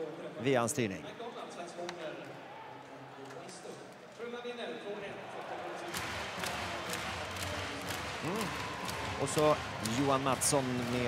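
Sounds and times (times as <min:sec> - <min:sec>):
crowd and rink noise: 0:00.0 - 0:11.0.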